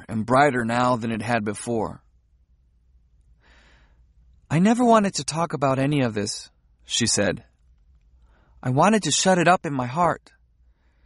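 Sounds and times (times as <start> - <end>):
person drawing a breath: 3.4 - 4.1.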